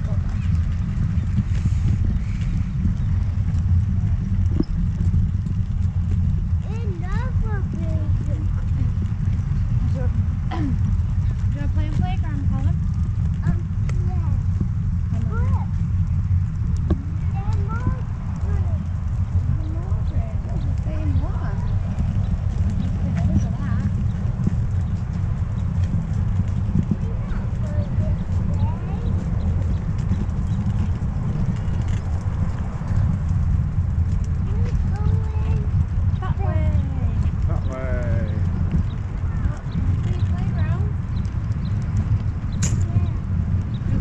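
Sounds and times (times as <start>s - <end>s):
pushchair wheels rolling on tarmac: 0.0s - 44.0s
steady low rumble: 0.0s - 44.0s
faint indistinct voices: 16.9s - 25.6s, 26.3s - 33.2s.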